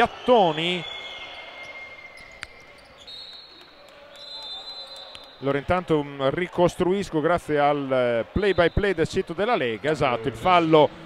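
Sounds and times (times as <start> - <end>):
arena crowd noise: 0.0 - 11.0
sneakers squeaking on floor: 0.8 - 5.2.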